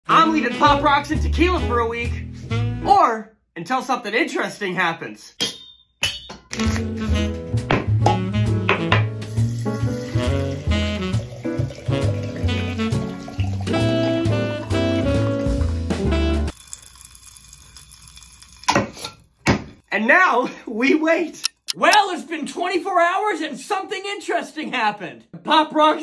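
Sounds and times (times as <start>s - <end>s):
background music with bass line: 0.1s - 3.0s, 6.5s - 16.5s
liquid pouring into glass jar: 9.3s - 15.8s, 16.5s - 19.4s.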